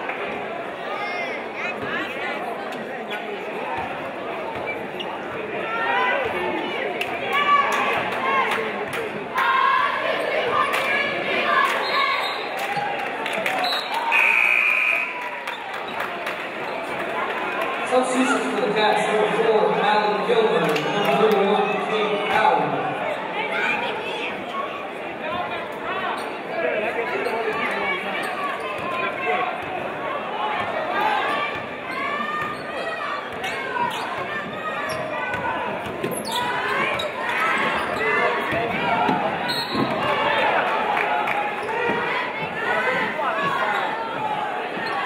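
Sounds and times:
echoing crowd voices: 0.0s - 45.0s.

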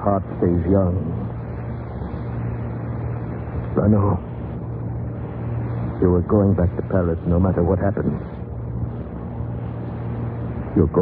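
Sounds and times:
radio recording hum and hiss: 0.0s - 11.0s.

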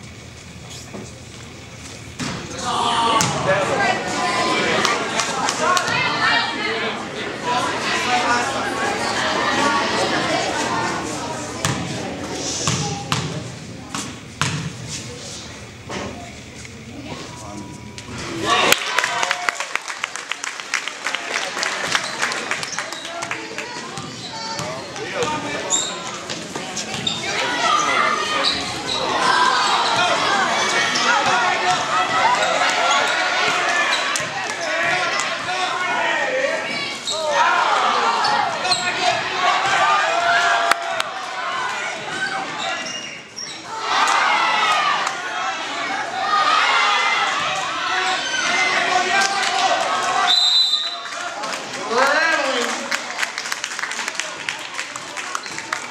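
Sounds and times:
crowd talking and shouting: 0.0s - 55.9s.

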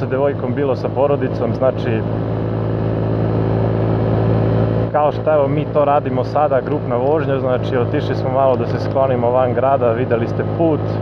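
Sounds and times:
scooter engine cruising: 0.0s - 11.0s.

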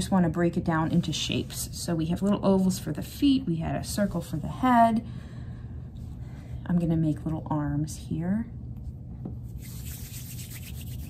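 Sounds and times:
palms rubbing clay: 9.5s - 11.0s.

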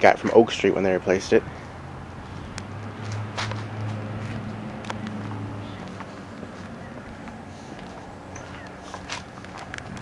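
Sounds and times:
footsteps on concrete: 2.8s - 10.0s.

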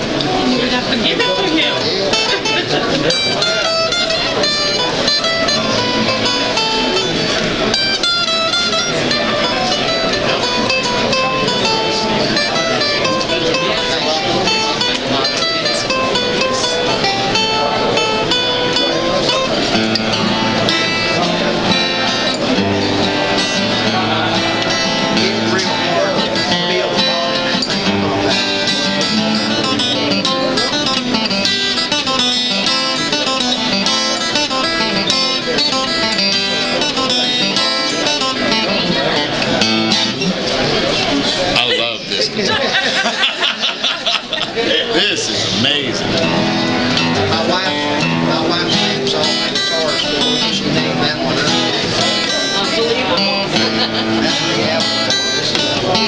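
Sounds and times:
guitar picked notes and chords: 0.0s - 56.0s.

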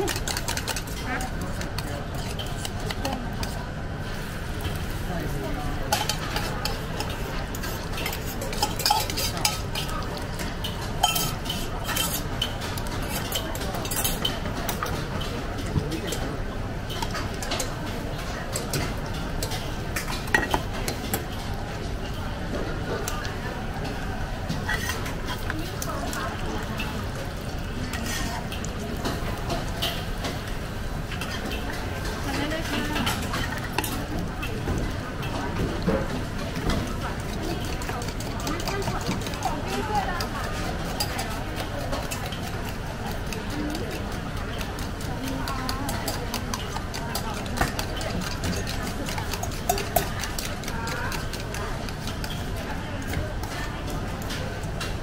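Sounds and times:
ladle stirring in wok: 0.0s - 55.0s
metal utensil clinking on pan: 8.0s - 10.0s, 10.6s - 14.4s
fork scraping in wok: 24.6s - 25.6s.

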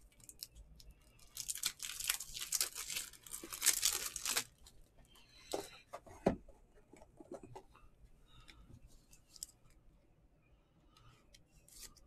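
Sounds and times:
plastic rustling: 1.1s - 4.7s.

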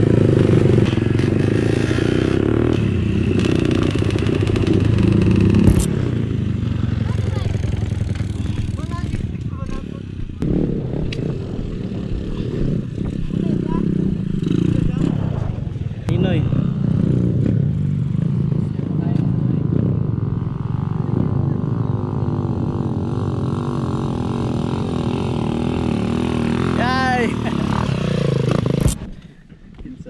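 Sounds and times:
dirt bike engines idling: 0.0s - 30.0s.

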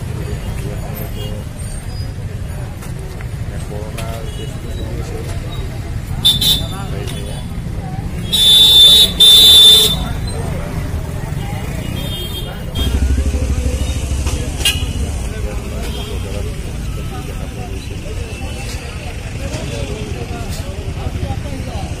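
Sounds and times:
people chattering: 0.0s - 22.0s
vehicle engine rumbling: 0.0s - 22.0s
horn toots: 8.2s - 10.2s, 11.9s - 16.3s.

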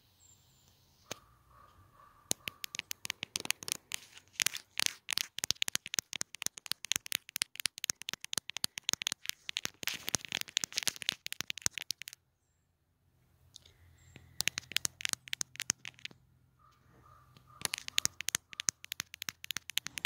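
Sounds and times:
fingertips tapping on camera lens: 2.2s - 12.2s, 14.1s - 20.0s
scratching on microphone: 2.3s - 12.2s, 17.0s - 20.0s.

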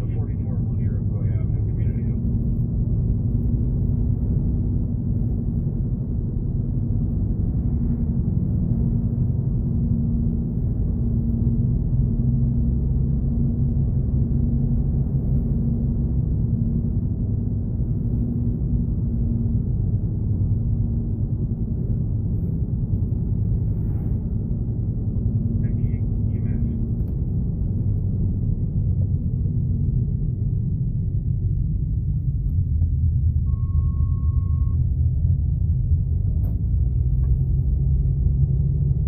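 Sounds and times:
road and engine noise in car: 0.0s - 39.0s.

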